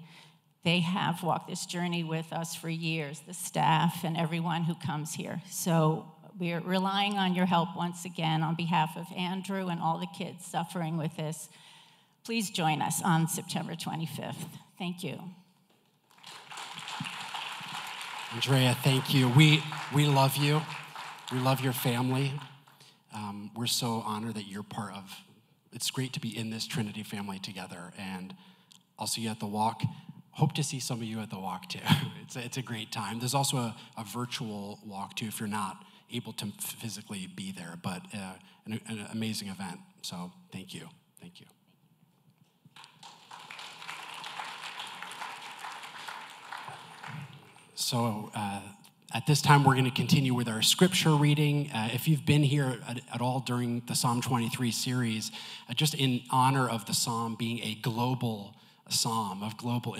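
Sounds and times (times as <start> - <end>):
audience clapping: 16.0 - 22.9, 42.8 - 48.3
congregation applauding: 16.0 - 22.9, 42.8 - 48.3.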